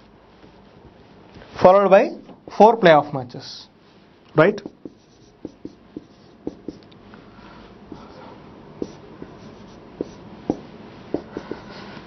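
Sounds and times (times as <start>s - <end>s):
marker tapping on whiteboard: 4.5s - 6.8s, 8.8s - 11.7s
marker strokes on whiteboard: 4.5s - 6.9s, 7.9s - 8.2s, 8.8s - 12.0s.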